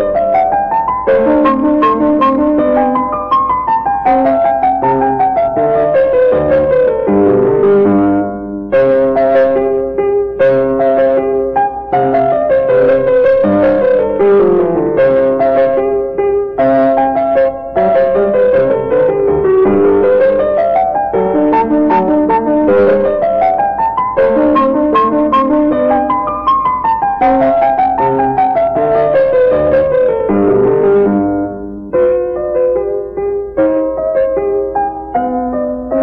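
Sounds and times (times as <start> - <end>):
piano playing classical piece: 0.0 - 36.0.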